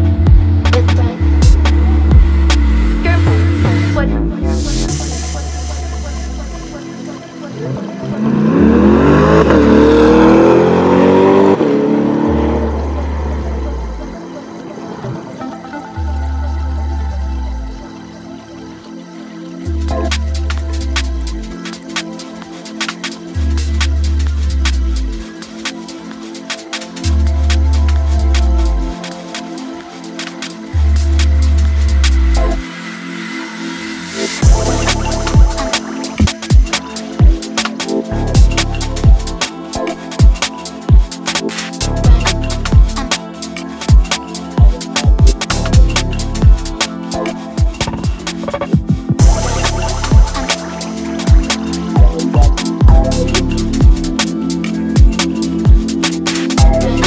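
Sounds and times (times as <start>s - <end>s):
electronic music: 0.0s - 57.0s
fast ticking percussion: 0.1s - 4.0s, 19.7s - 32.6s, 34.4s - 57.0s
loud rising and falling sweep: 8.2s - 13.8s.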